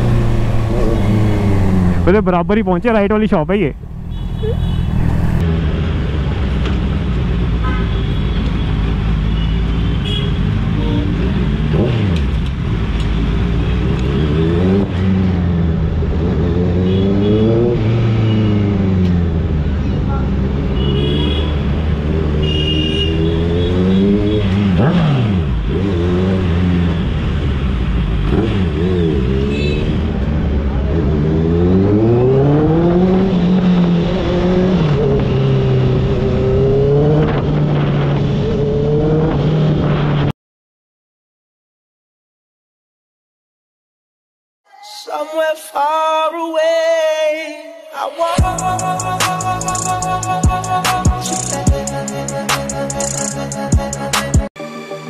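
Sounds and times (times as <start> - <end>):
motorcycle engine revving: 0.0 - 2.2, 10.4 - 40.3
horn toots: 4.0 - 5.4, 16.8 - 18.7, 22.4 - 25.3, 29.4 - 30.1.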